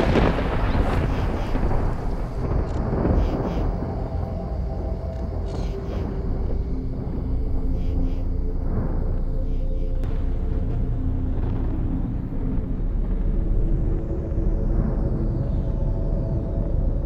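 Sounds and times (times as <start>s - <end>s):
thunder rolling: 0.0s - 15.6s.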